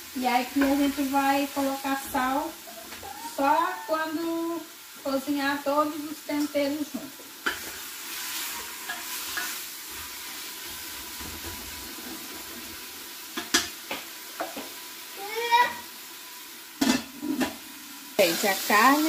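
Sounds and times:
beef sizzling in pot: 0.0 - 19.0.

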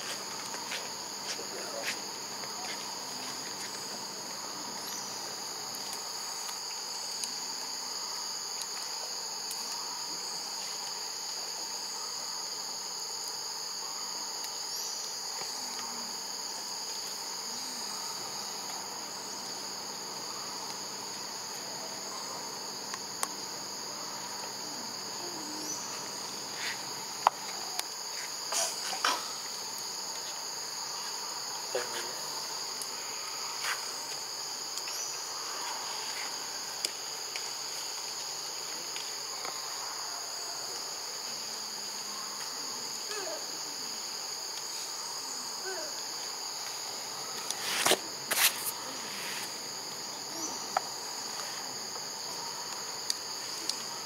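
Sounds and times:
insect chorus: 0.0 - 54.0.

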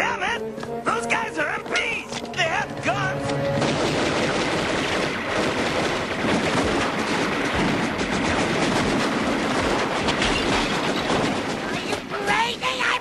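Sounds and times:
rapid gunfire: 3.5 - 13.0.

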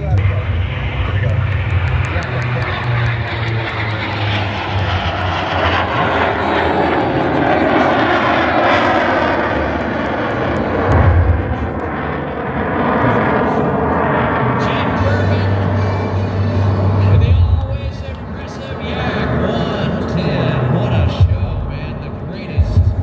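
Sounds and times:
aircraft engine noise: 0.0 - 23.0.

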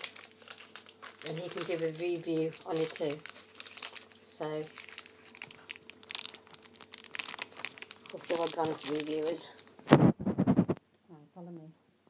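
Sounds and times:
plastic wrappers crinkling: 0.0 - 10.0.

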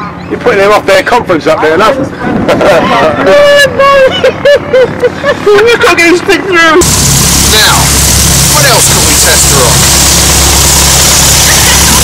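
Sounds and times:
light aircraft piston engine: 6.8 - 12.0
loud even rush of noise: 6.8 - 12.0.

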